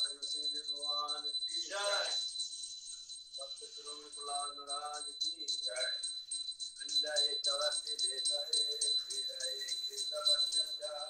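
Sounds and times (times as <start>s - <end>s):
people's voices: 0.0s - 2.2s, 3.4s - 6.0s, 6.8s - 11.0s
hand bell ringing rapidly: 0.0s - 11.0s.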